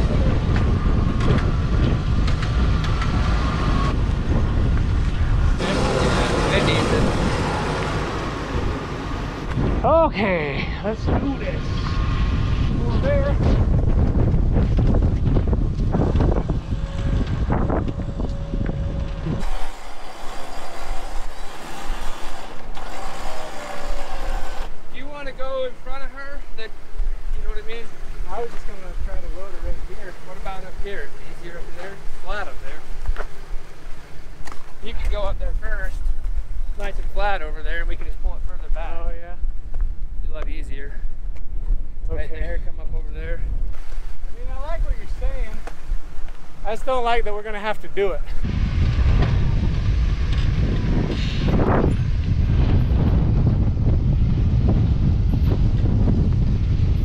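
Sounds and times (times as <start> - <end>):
wind rumbling on microphone: 0.0 - 57.0
indistinct voices: 5.6 - 8.8.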